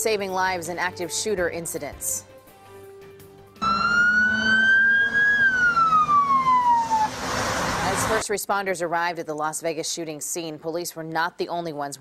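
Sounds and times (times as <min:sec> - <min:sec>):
emergency vehicle siren wailing: 0:03.6 - 0:08.2.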